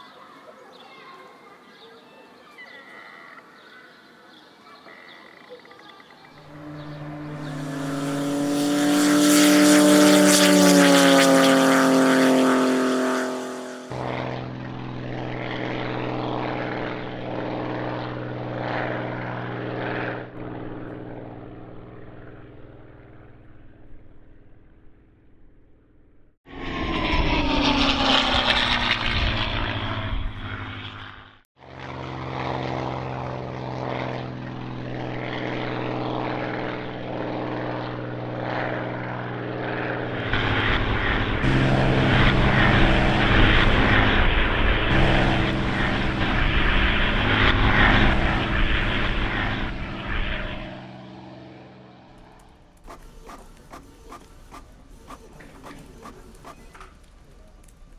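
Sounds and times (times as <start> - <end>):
propeller plane engine passing: 4.8 - 57.9.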